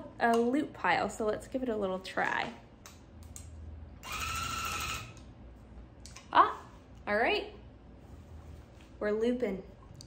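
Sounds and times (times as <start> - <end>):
tufting gun motor whine: 4.0 - 5.2.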